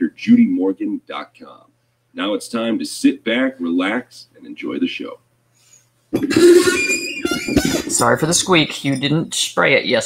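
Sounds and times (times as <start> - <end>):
person laughing: 6.2 - 8.0
loud drawn-out squeak: 6.5 - 8.0.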